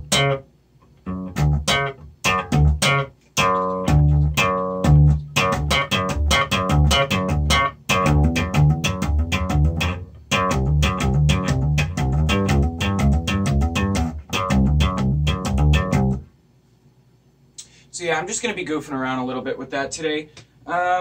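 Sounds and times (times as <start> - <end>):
slap bass guitar riff: 0.0 - 16.3.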